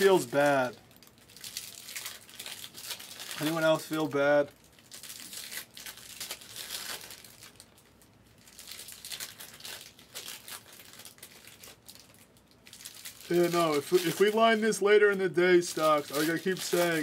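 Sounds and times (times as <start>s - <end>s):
foil packs crinkling: 0.0s - 17.0s.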